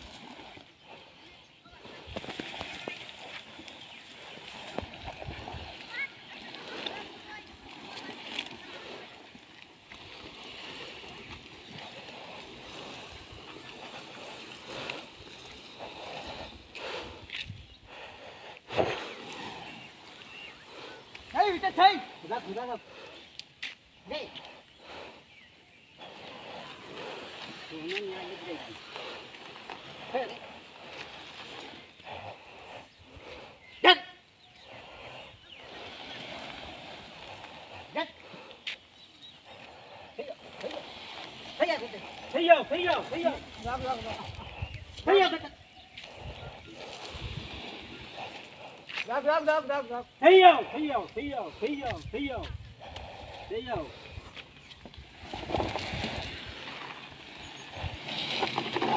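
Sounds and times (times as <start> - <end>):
faint outdoor background: 5.1 - 10.2, 11.2 - 36.0, 37.2 - 47.3, 48.2 - 58.9
log scraping through wet grass: 54.7 - 58.9.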